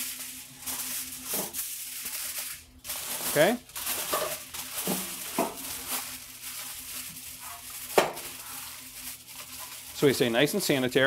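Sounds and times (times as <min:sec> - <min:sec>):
aluminium foil crinkling: 0:00.0 - 0:11.0.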